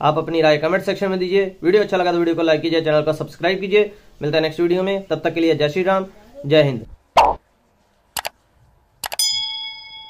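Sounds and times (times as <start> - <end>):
bright bell ding: 9.2 - 10.0.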